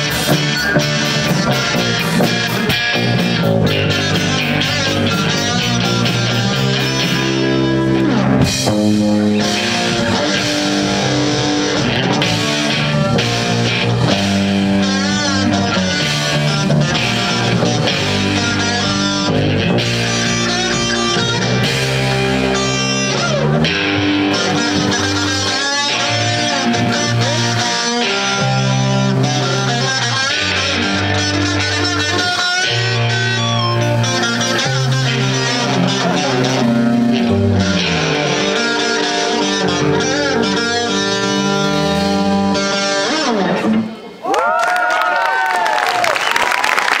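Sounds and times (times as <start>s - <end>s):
live rock band playing: 0.0s - 44.2s.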